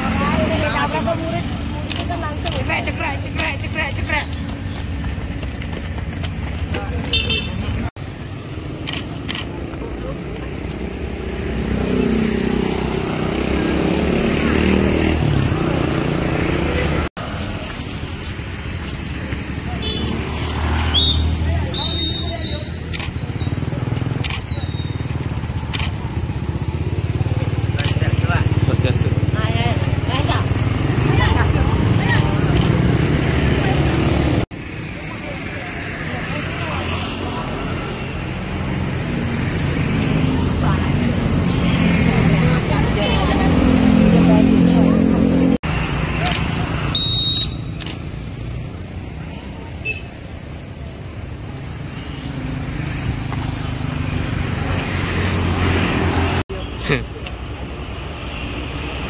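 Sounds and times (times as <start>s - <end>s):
people's voices: 0.0s - 7.9s, 8.8s - 17.8s, 18.8s - 47.1s
car engines passing: 0.0s - 59.0s
motorcycle engines passing: 0.0s - 59.0s.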